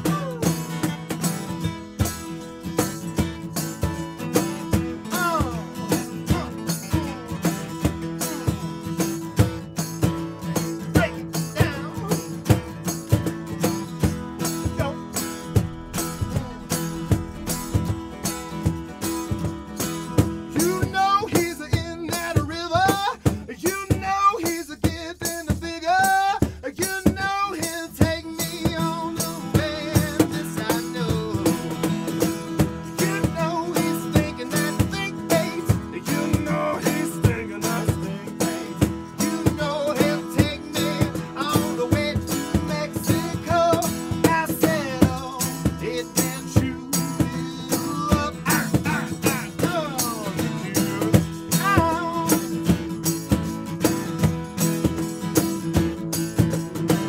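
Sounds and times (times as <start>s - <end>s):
man singing: 0.0s - 0.8s, 4.2s - 8.3s, 10.8s - 12.6s, 14.5s - 53.0s
acoustic guitars strumming: 0.0s - 57.0s
cajon beat: 0.0s - 57.0s.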